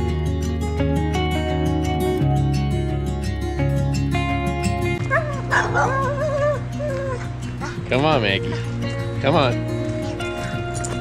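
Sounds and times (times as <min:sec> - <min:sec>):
background music: 0:00.0 - 0:11.0
dog whining: 0:05.1 - 0:07.3.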